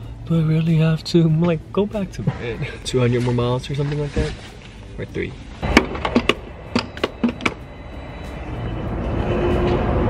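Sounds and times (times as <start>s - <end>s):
music: 0.0s - 10.0s
rushing noise: 5.5s - 10.0s.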